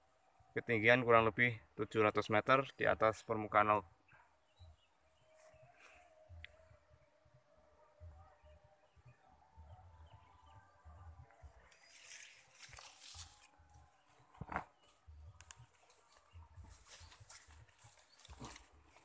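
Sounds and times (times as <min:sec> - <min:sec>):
leaves rustling: 0:11.6 - 0:19.0.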